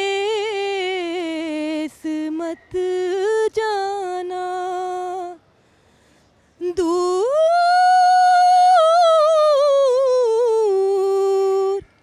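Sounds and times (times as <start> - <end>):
woman singing unaccompanied: 0.0 - 5.4, 6.6 - 12.0.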